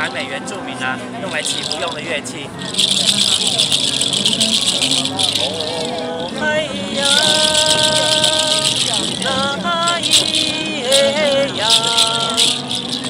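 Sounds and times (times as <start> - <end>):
seed shell rattle shaken: 1.2 - 2.0, 2.6 - 13.0
person singing: 2.7 - 13.0.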